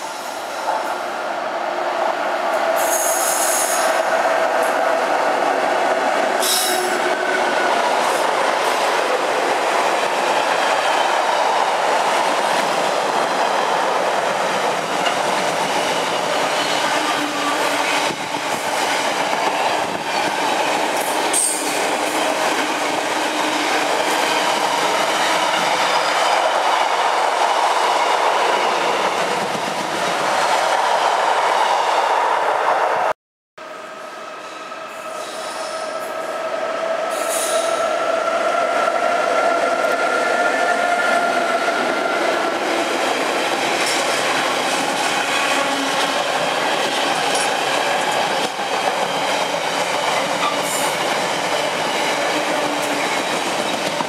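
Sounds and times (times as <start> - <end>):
freight train rumbling on rails: 0.0 - 54.0.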